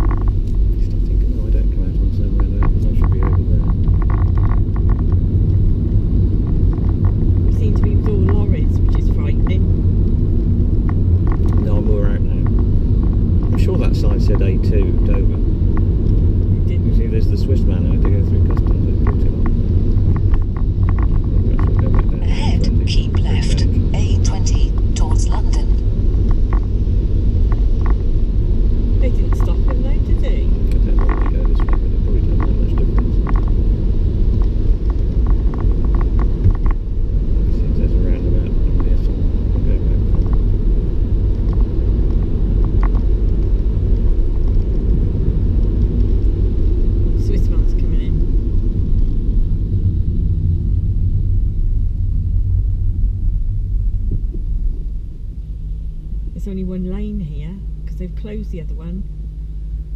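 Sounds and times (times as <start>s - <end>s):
car interior road and engine rumble: 0.0s - 59.9s.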